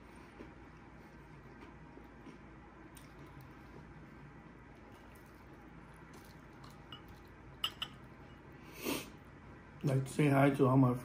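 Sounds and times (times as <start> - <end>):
close-up chewing: 0.0 - 7.6.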